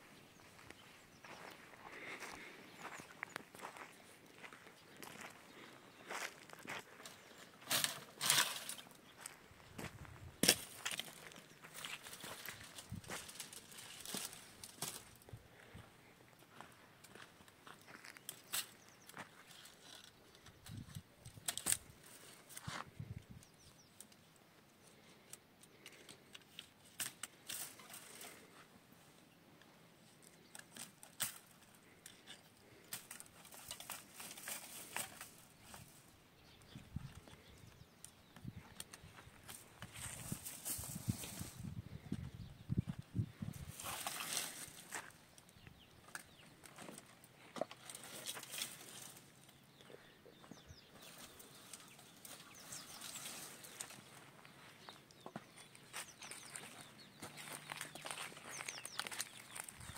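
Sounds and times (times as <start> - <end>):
dry brush rustling and scraping: 6.1 - 15.3, 30.4 - 36.1, 38.8 - 42.0, 43.2 - 45.2, 46.1 - 49.5, 50.4 - 59.9.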